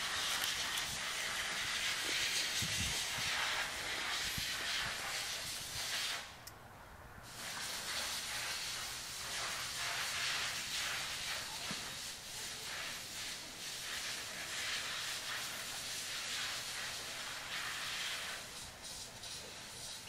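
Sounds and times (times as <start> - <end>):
steady hiss: 0.0 - 20.0.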